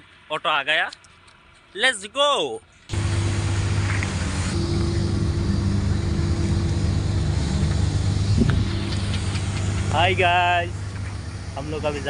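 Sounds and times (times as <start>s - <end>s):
auto-rickshaw engine idling: 2.9s - 12.0s.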